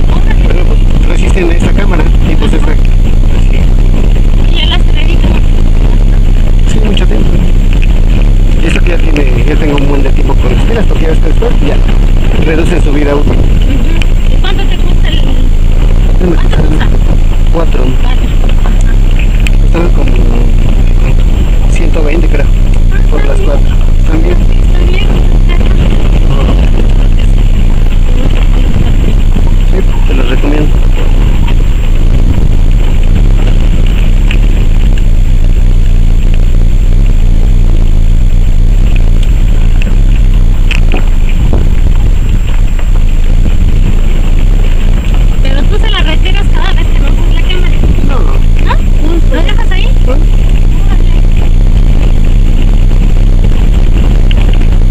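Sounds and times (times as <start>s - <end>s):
indistinct voices: 0.0s - 54.9s
vehicle engine and road rumble: 0.0s - 54.9s
wind buffeting microphone: 0.0s - 54.9s.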